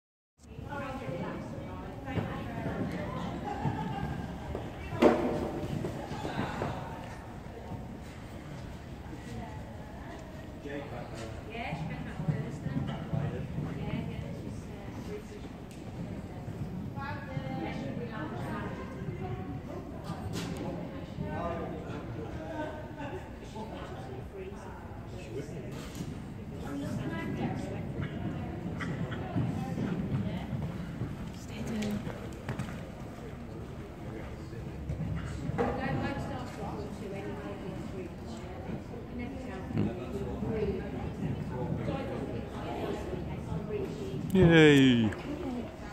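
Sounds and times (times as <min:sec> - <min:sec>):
murmuring voices: 0:44.2 - 0:45.8.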